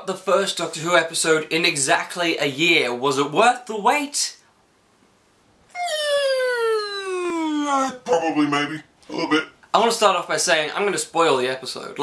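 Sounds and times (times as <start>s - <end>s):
man humming falling pitch: 5.7s - 8.1s.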